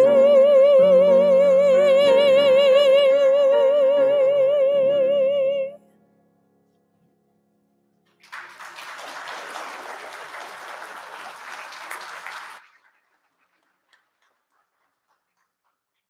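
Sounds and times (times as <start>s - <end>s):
congregation applauding: 8.1s - 16.0s.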